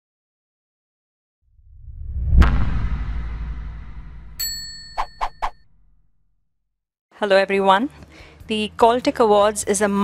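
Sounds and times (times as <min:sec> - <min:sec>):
low whoosh: 0:01.6 - 0:05.0
bright ding: 0:04.4 - 0:05.2.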